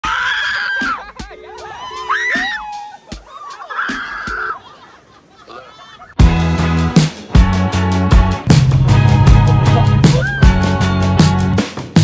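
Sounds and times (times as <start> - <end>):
riders screaming: 0.0 - 4.7, 10.1 - 10.7.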